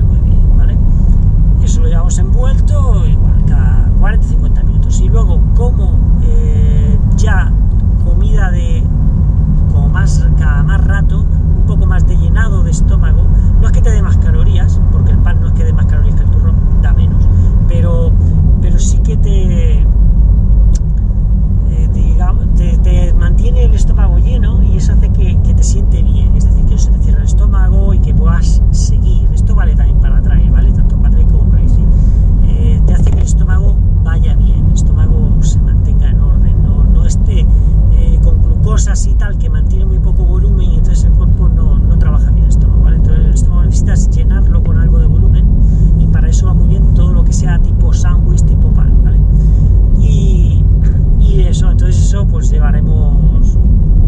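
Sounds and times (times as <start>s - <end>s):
man talking: 0.0s - 0.8s, 1.6s - 8.9s, 9.7s - 19.9s, 21.6s - 53.6s
car driving rumble inside cabin: 0.0s - 54.0s.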